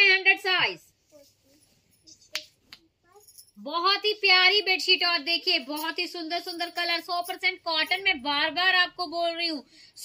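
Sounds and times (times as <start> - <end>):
faint small sounds: 0.8 - 4.2.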